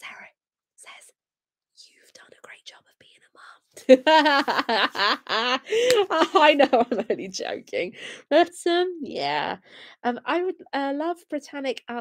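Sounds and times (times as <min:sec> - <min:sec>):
woman whispering: 0:00.0 - 0:01.1, 0:01.8 - 0:03.9
woman laughing: 0:03.8 - 0:08.2.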